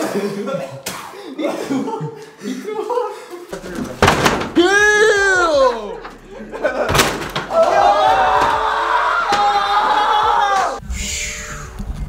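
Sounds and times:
door banging: 0:03.6 - 0:05.2, 0:06.0 - 0:10.0
man yelling: 0:04.5 - 0:06.1.

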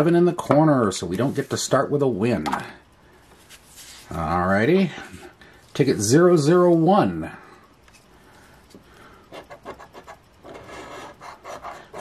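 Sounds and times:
scratching lottery ticket: 0:09.3 - 0:12.0.

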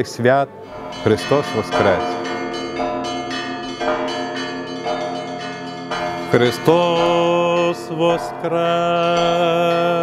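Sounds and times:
church bells ringing: 0:00.0 - 0:10.0.

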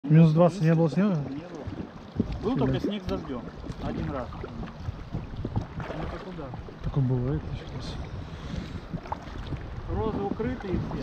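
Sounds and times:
paddles pulling through water: 0:00.0 - 0:11.0
water splashing: 0:00.0 - 0:11.0
wind rumbling on microphone: 0:00.8 - 0:11.0.

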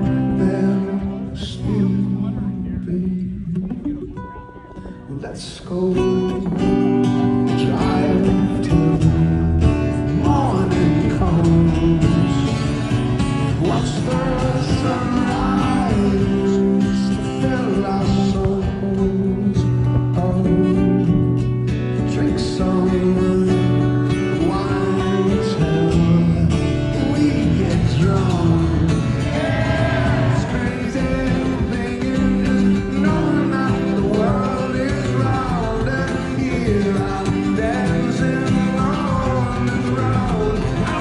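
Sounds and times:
acoustic guitar: 0:00.0 - 0:41.0
person singing: 0:00.0 - 0:41.0.

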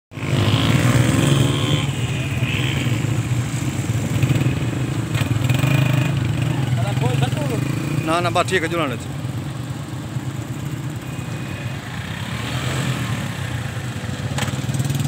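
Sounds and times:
small motorcycles passing: 0:00.1 - 0:15.0
men calling out: 0:06.0 - 0:09.2.

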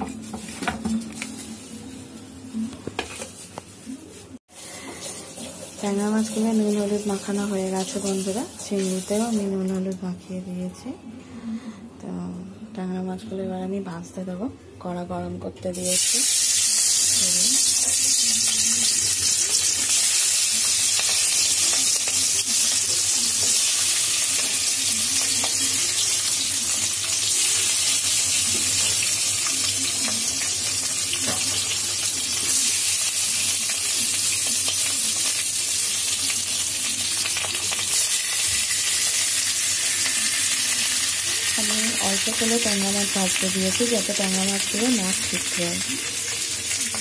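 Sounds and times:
fish sizzling in hot oil: 0:04.5 - 0:09.4, 0:15.8 - 0:47.0.

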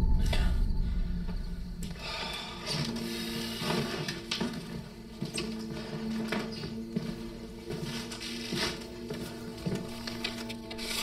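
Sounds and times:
sustained low tones: 0:00.0 - 0:02.6
tense film underscore: 0:00.0 - 0:11.0.

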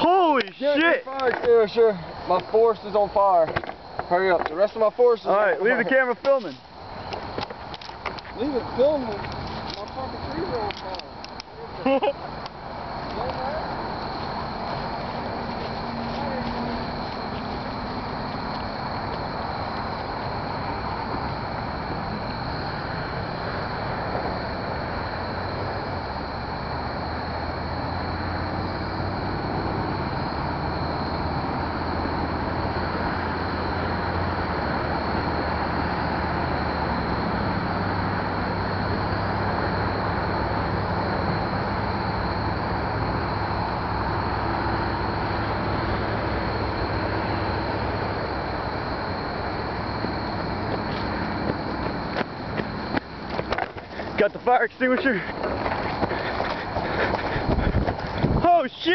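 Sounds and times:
vehicle engine humming: 0:00.0 - 0:58.9.

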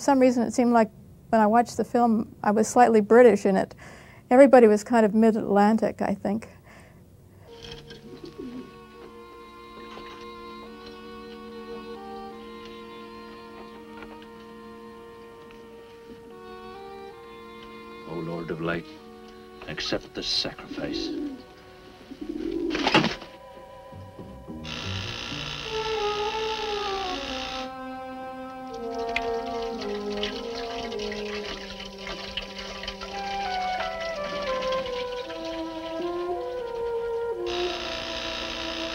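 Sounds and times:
held music notes: 0:07.4 - 0:38.9
dove cooing: 0:07.6 - 0:09.1, 0:20.6 - 0:23.3.

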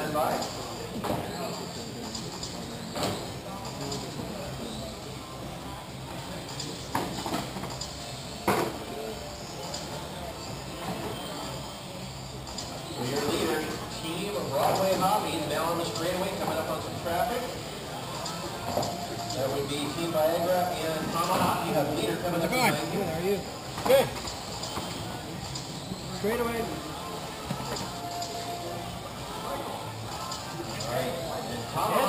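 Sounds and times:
people talking: 0:12.7 - 0:32.0.

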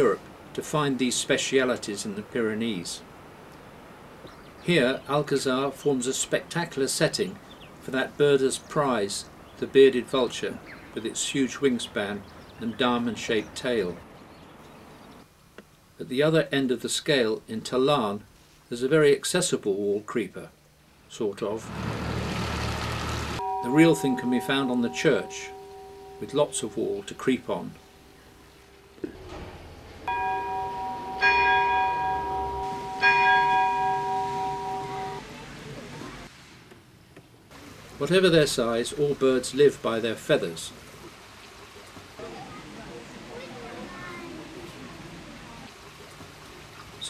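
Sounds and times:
faint background hiss: 0:00.0 - 0:22.1, 0:23.4 - 0:47.0
church bell ringing: 0:23.4 - 0:27.2, 0:30.0 - 0:35.2.

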